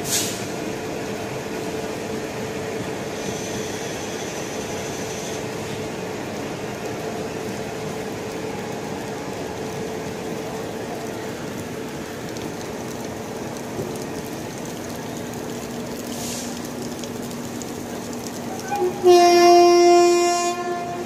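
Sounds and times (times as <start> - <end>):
heavy rain hissing: 0.0 - 21.0
train car humming: 0.0 - 21.0.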